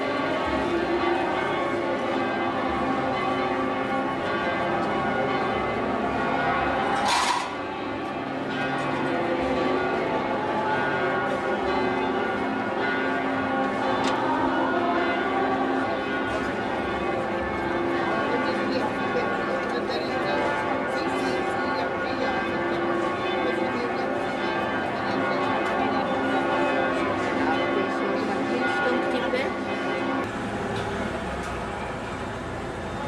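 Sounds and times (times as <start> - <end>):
church bells ringing: 0.0 - 33.0.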